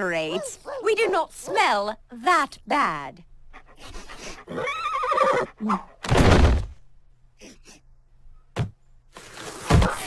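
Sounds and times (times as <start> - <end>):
cartoon horse whinny: 4.5 - 5.7.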